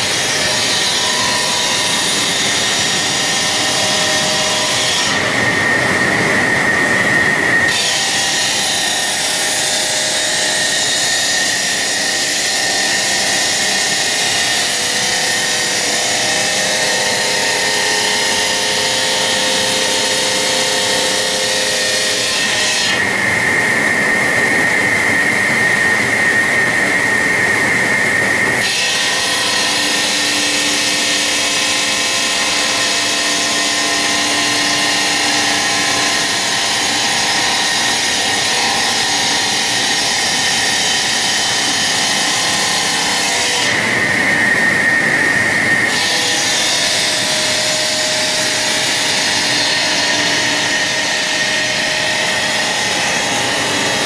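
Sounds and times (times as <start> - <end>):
circular saw cutting stone: 0.0 - 54.0.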